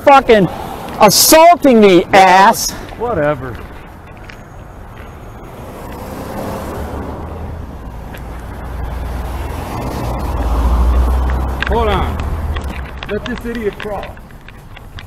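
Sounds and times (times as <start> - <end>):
car passing by: 5.2 - 13.0.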